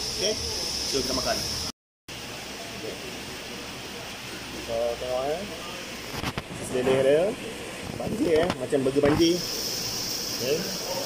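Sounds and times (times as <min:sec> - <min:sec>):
background hiss: 0:08.9 - 0:11.0.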